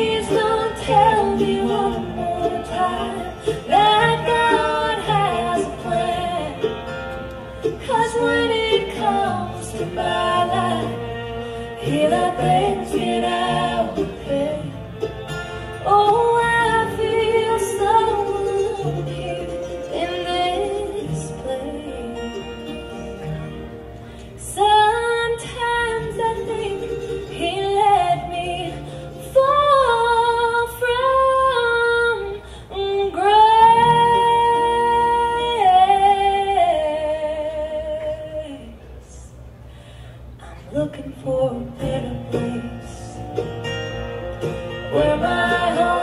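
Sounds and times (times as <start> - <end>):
woman singing: 0.0 - 6.8, 7.7 - 14.8, 15.8 - 23.2, 24.4 - 39.0, 40.4 - 43.5, 44.9 - 46.0
voices singing harmony: 0.0 - 7.0, 7.6 - 15.1, 15.8 - 23.3, 40.5 - 46.0
acoustic guitar: 0.0 - 46.0
live bluegrass band: 0.0 - 46.0
woman singing long notes: 44.8 - 46.0.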